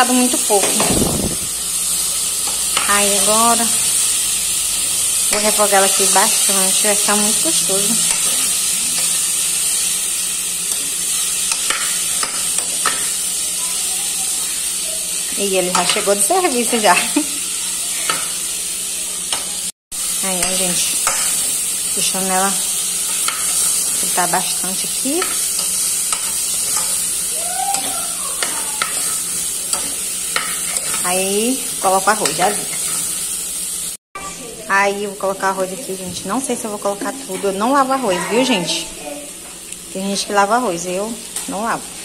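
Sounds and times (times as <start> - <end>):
sausage sizzling in a pot: 0.0 - 42.0.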